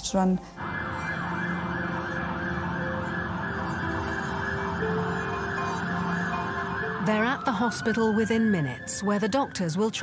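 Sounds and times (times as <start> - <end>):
ambulance siren yelping: 0.6 - 10.0.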